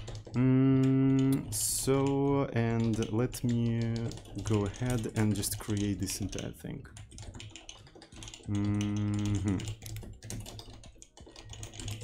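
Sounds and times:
rapid typing on keyboard: 0:00.0 - 0:12.0.

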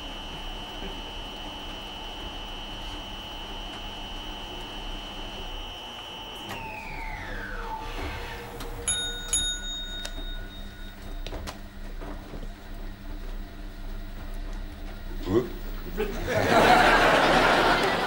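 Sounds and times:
washing machine spin whine: 0:00.0 - 0:18.0
bell dings: 0:08.8 - 0:11.3.

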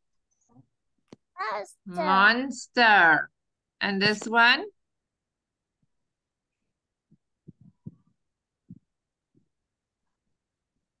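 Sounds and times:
dull low thumps: 0:07.1 - 0:09.0.

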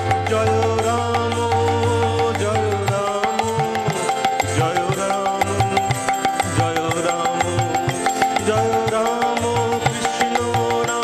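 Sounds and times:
hand drum: 0:00.0 - 0:11.0
held melody line: 0:00.0 - 0:11.0.

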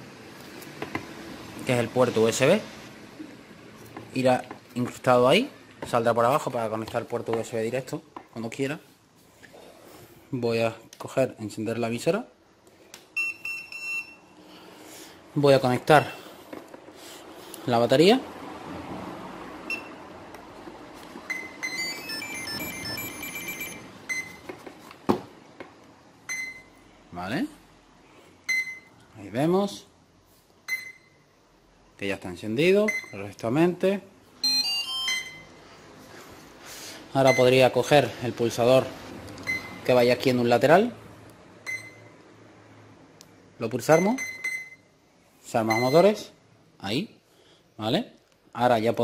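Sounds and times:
high beeps: 0:13.2 - 0:14.3, 0:19.7 - 0:20.0, 0:21.3 - 0:24.4, 0:26.3 - 0:26.8, 0:28.5 - 0:28.9, 0:30.7 - 0:31.2, 0:34.4 - 0:35.6, 0:39.4 - 0:39.9, 0:41.7 - 0:42.1, 0:43.9 - 0:44.9, 0:45.7 - 0:46.2
short electronic beep: 0:21.3 - 0:24.4, 0:34.4 - 0:35.6, 0:39.4 - 0:39.9
buzzer startup tune: 0:21.5 - 0:24.0.

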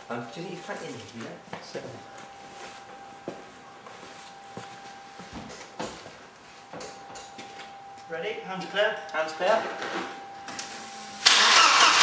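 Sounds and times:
faint steady whine: 0:00.0 - 0:11.3.

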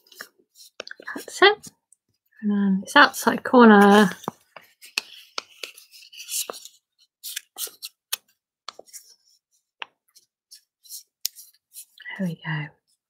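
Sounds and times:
paper crinkling: 0:03.7 - 0:09.2.

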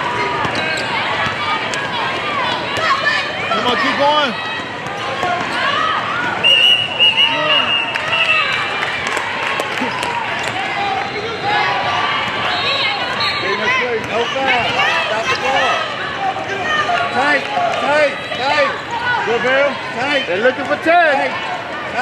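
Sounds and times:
people talking and calling out: 0:00.0 - 0:22.0.

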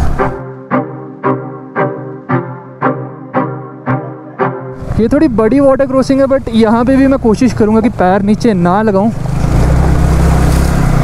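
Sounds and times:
motorcycle engine running: 0:04.8 - 0:11.0.

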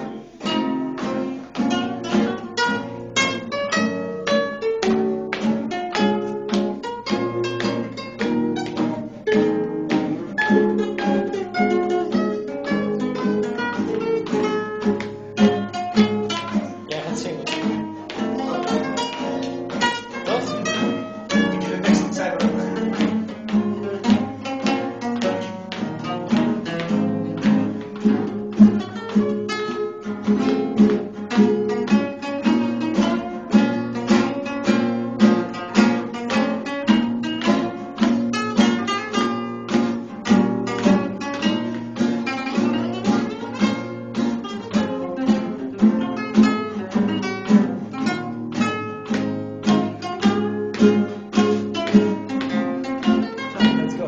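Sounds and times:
fingerstyle acoustic guitar: 0:00.0 - 0:54.0.

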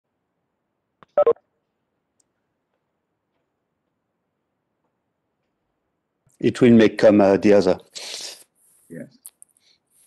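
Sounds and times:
short electronic beeps: 0:01.2 - 0:01.4.

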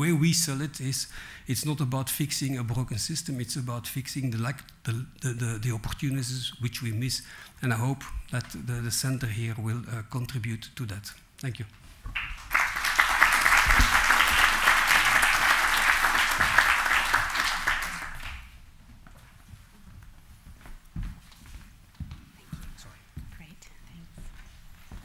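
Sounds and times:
audience applauding: 0:12.2 - 0:18.5.

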